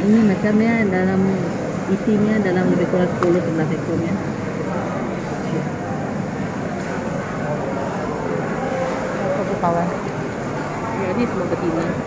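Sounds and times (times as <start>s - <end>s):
continuous noisy rumble: 0.0s - 12.0s.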